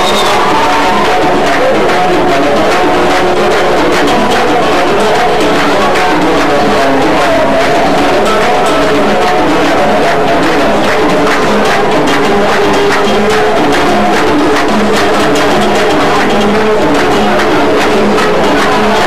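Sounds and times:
hand drums: 0.0 - 19.0
plucked string instruments: 0.0 - 19.0.

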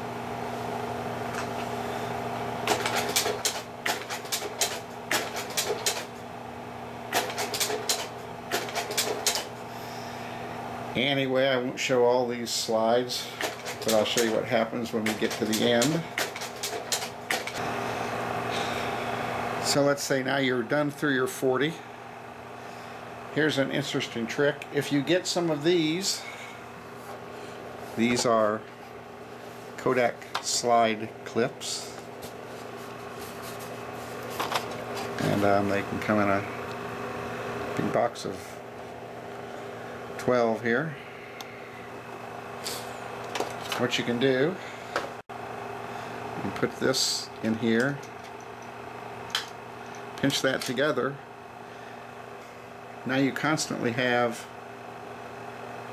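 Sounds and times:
slide projector fan hum: 0.0 - 55.9
handling rustle: 32.0 - 35.4.

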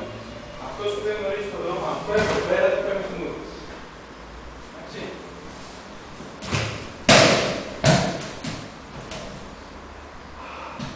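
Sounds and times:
body thudding on a mat: 6.4 - 9.4.

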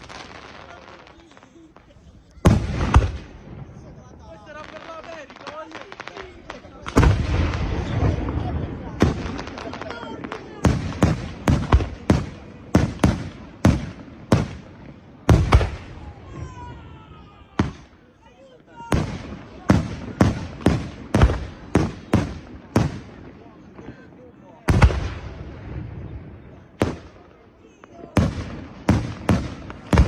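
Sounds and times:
fireworks crackling: 0.0 - 30.0.

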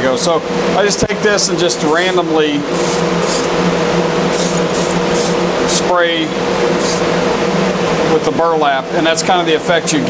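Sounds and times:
exhaust fan hum: 0.0 - 10.0
spray gun hissing bursts: 1.9 - 3.7, 4.3 - 5.6, 6.7 - 7.2.

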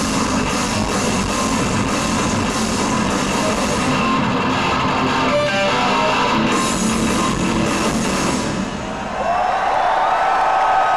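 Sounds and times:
heavy rock band guitar music: 0.0 - 8.9.

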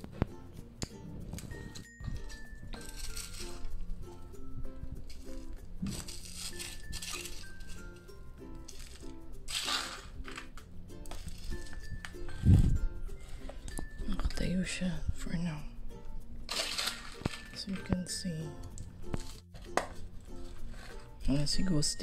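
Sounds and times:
soft background music: 0.0 - 22.0
spoon scraping potting mix: 1.2 - 22.0.

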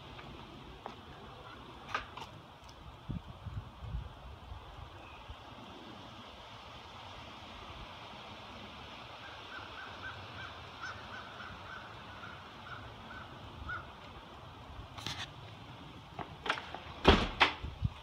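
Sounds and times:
high background hiss: 0.0 - 18.0.

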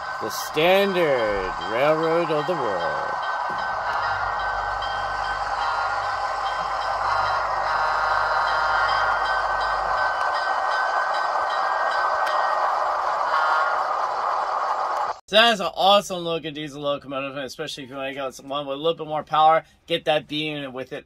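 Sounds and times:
low hum: 0.0 - 15.2
model train running with whine: 0.0 - 15.2.

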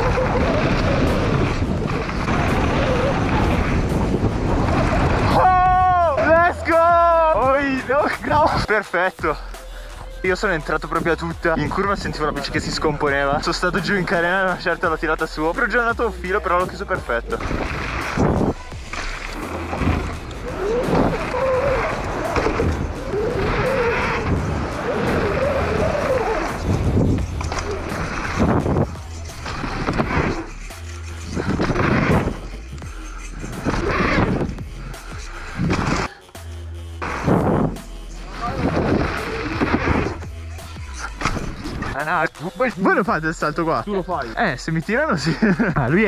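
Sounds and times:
bike tyres rolling on dirt: 0.0 - 8.7, 11.1 - 36.2, 37.0 - 43.8
background music with bass line: 0.0 - 46.0.

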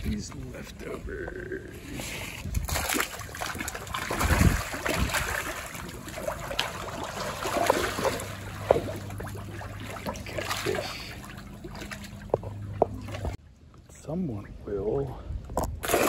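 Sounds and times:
fish splashing at water surface: 2.4 - 13.4.

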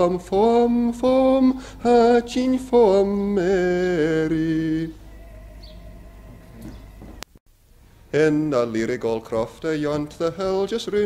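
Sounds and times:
background hiss: 0.0 - 11.0
steady low hum: 0.0 - 11.0.

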